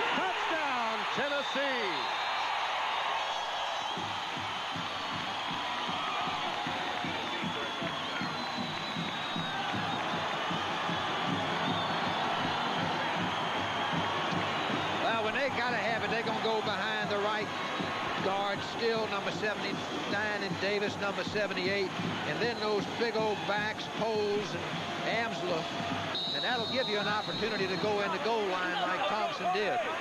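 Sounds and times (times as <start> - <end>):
stadium crowd cheering: 0.0 - 30.0
band drumbeat: 3.9 - 28.5.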